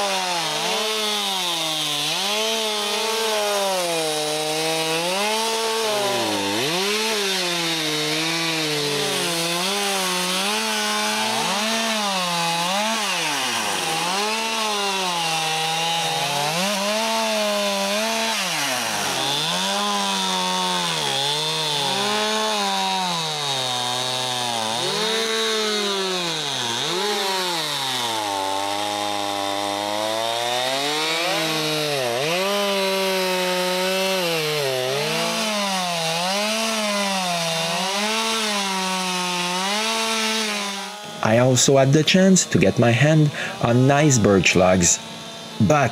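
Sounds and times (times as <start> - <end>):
chainsaw cutting logs: 0.0 - 45.9.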